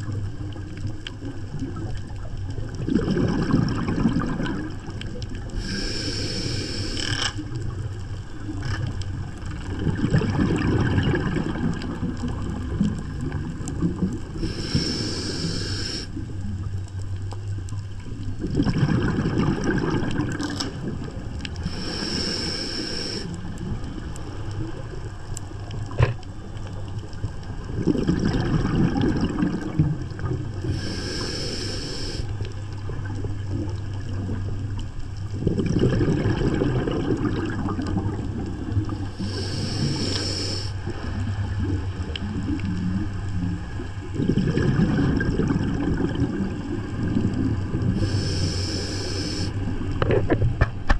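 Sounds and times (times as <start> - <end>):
bubbling exhale underwater: 0.0 - 16.7, 18.1 - 26.2, 27.5 - 34.5, 35.2 - 50.2
regulator inhale hiss: 5.6 - 7.5, 14.4 - 16.2, 21.6 - 23.5, 30.6 - 32.4, 39.0 - 41.2, 47.9 - 49.7
steady low hum: 12.4 - 18.4, 19.8 - 27.6, 29.4 - 35.5, 37.4 - 44.3, 46.0 - 50.9.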